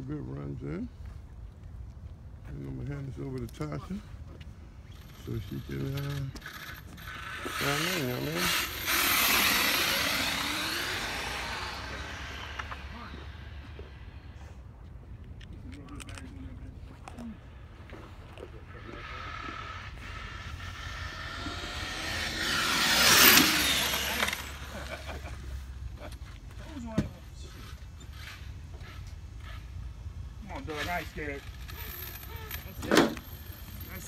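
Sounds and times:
remote control car whining: 4.8 - 14.7, 16.9 - 34.0.

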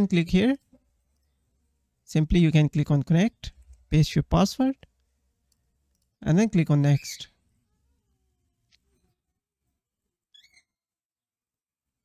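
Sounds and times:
faint high-pitched chirp: 10.3 - 10.8.

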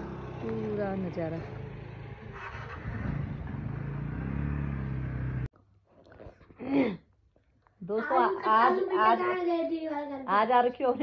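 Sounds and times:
vehicle engine running: 0.0 - 5.5.

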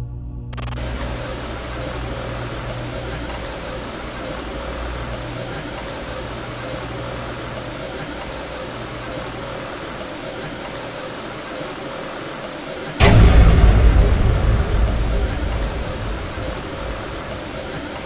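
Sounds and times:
faint steady tone: 0.0 - 18.0
low hum: 0.0 - 18.0
steady hiss: 0.5 - 18.0.

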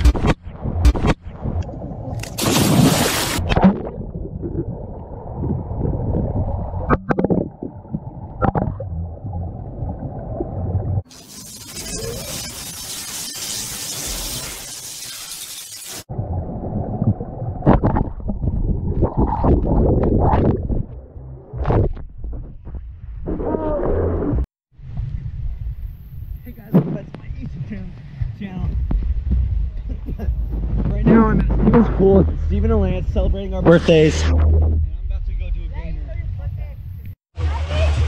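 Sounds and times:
noisy hissing sound effect: 11.1 - 16.1.

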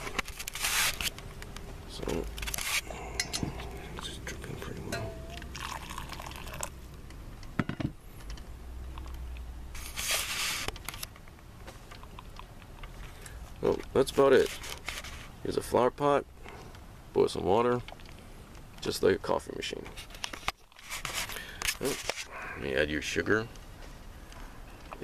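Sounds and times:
ceramic pot clinks: 4.8 - 6.3
water pouring into coffee filter: 5.4 - 6.8.

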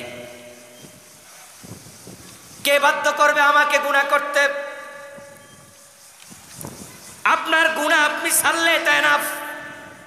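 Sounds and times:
man speaking over public address: 0.0 - 0.7, 2.7 - 5.0, 7.3 - 9.8
open-air background noise: 0.0 - 10.0.

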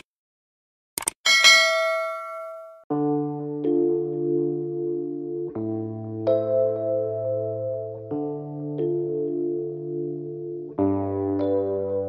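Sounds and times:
notification bell chime: 1.3 - 2.7.

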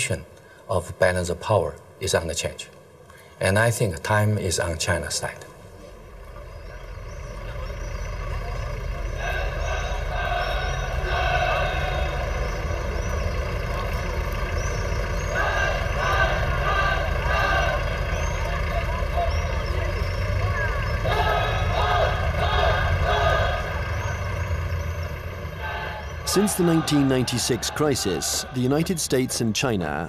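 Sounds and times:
irregular mid-range noise: 0.0 - 30.0
indistinct voices: 5.2 - 30.0
steady low rumble: 5.5 - 28.9.

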